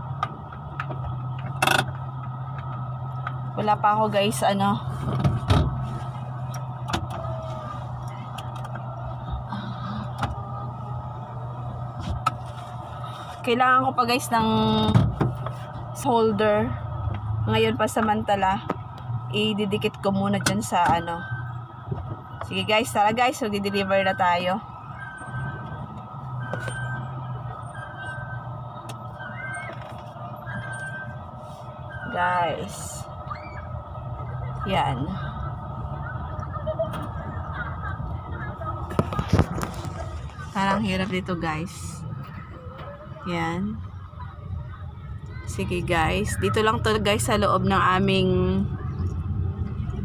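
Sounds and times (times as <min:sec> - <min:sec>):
car engine humming: 0:00.0 - 0:50.0.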